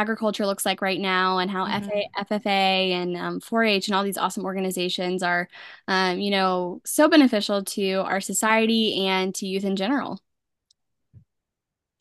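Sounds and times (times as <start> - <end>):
woman speaking: 0.0 - 10.2.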